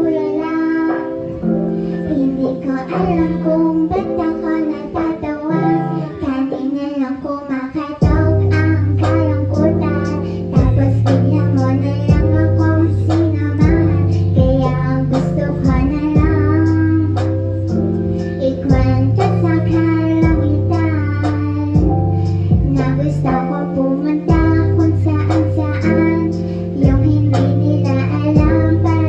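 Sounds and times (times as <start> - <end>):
instrumental backing music: 0.0 - 29.0
woman singing into a microphone: 1.9 - 17.5, 18.4 - 29.0
deep bass: 8.0 - 23.5, 24.2 - 29.0.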